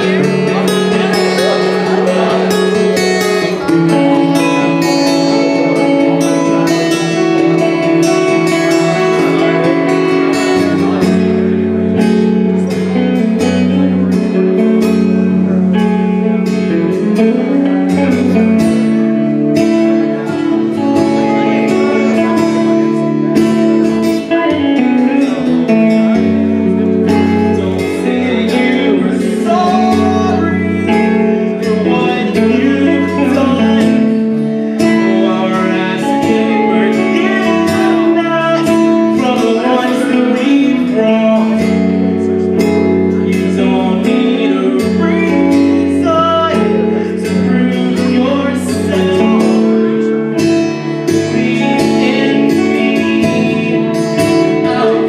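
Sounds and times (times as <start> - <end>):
rock band playing live: 0.0 - 55.0.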